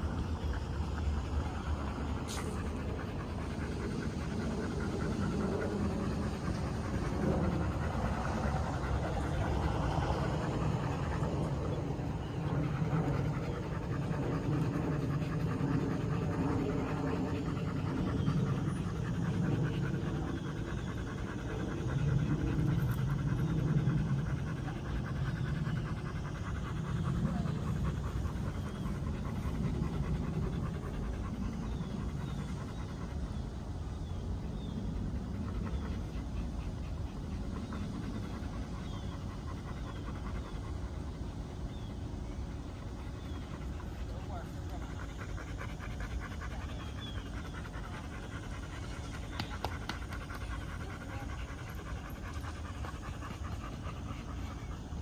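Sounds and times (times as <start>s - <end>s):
dog panting rapidly: 0.0s - 55.0s.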